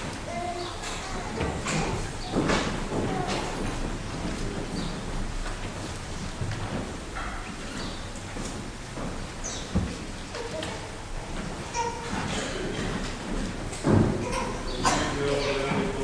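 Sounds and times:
footsteps on wooden floor: 0:00.0 - 0:14.9.

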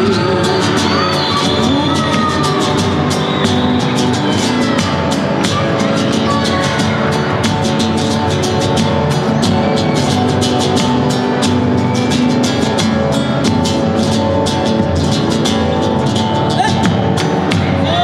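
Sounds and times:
strummed acoustic guitar: 0:00.0 - 0:18.0.

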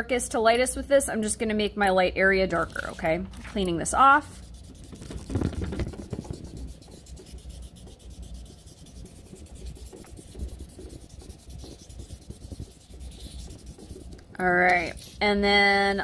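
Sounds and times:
blending stump scrubbing paper: 0:04.3 - 0:15.3.

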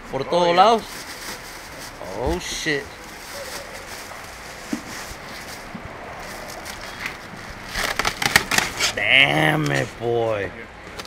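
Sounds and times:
plastic wrapping crinkling: 0:00.7 - 0:09.0.

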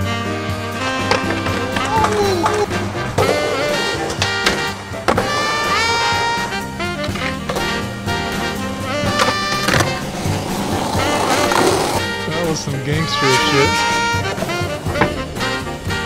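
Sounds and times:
loud background music: 0:00.0 - 0:16.0
skateboard grinding on concrete: 0:00.0 - 0:16.0
skateboard wheels rolling: 0:00.0 - 0:16.0
skateboard pops and landings: 0:00.8 - 0:12.0.

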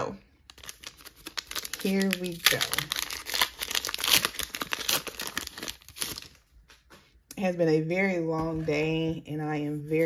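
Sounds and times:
foil wrapper crinkling and tearing: 0:00.4 - 0:06.5.

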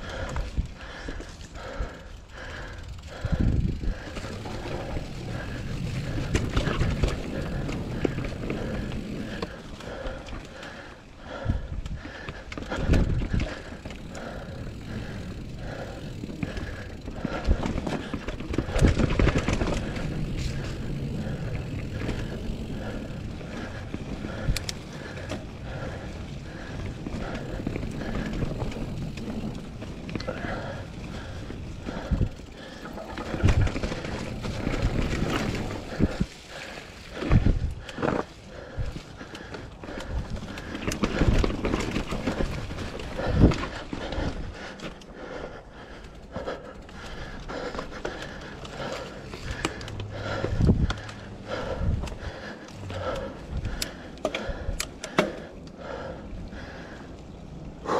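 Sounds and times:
bike rattling and knocking: 0:00.0 - 0:56.9
bike tyres rolling over dirt: 0:00.0 - 0:57.9.

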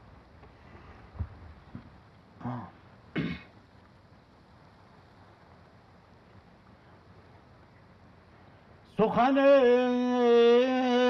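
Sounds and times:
man clearing his throat: 0:02.4 - 0:03.5.

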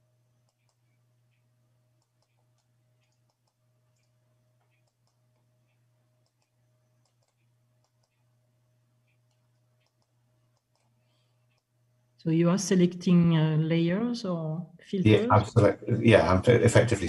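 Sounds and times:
low steady hum: 0:00.0 - 0:17.0
computer mouse clicks: 0:00.4 - 0:08.3, 0:09.0 - 0:11.7.

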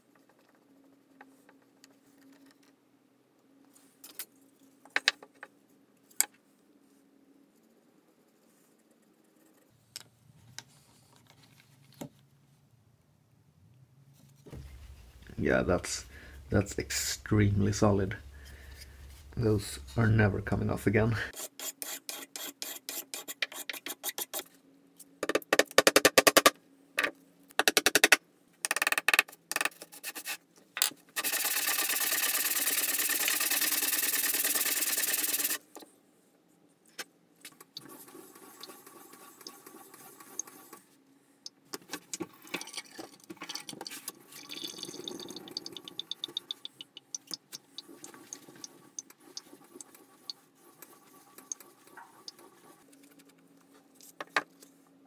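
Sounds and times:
steady hiss: 0:14.4 - 0:21.4, 0:31.2 - 0:35.7.

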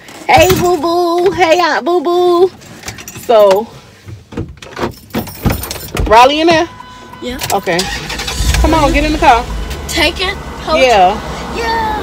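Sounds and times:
clicks and knocks inside a car: 0:00.1 - 0:06.8.

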